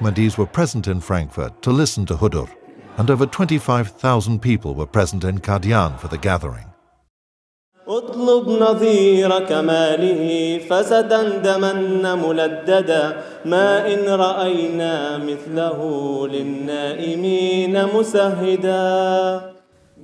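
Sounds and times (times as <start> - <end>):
man chanting unaccompanied: 0.0 - 6.8, 7.8 - 19.6.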